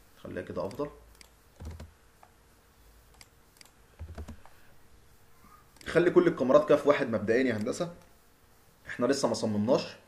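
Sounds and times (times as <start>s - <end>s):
keyboard and mouse clicks: 0.6s - 1.9s, 3.1s - 4.6s, 5.8s - 6.2s.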